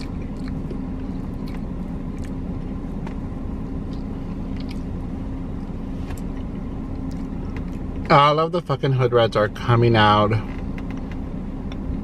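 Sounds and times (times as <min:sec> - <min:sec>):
car engine idling rumble: 0:00.0 - 0:12.0.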